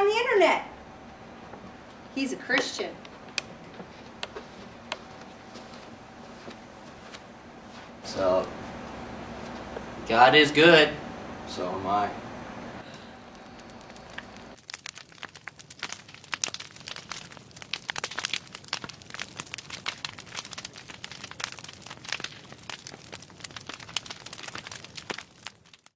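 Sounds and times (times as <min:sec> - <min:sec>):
low room hum: 0:00.0 - 0:14.6
dense irregular crackling: 0:00.0 - 0:25.9.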